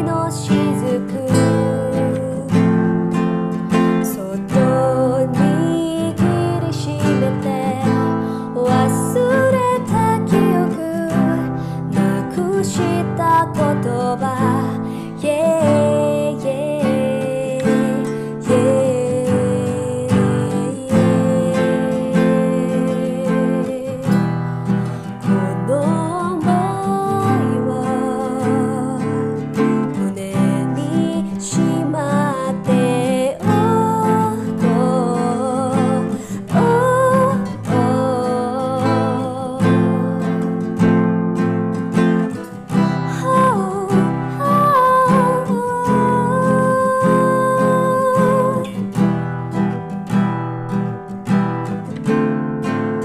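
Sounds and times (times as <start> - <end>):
person singing with vibrato: 0.0 - 41.0, 42.6 - 49.2
acoustic guitar strumming: 0.0 - 53.0.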